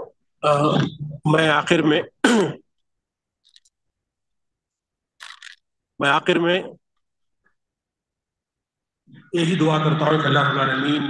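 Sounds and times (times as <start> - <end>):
man speaking: 9.1 - 11.0.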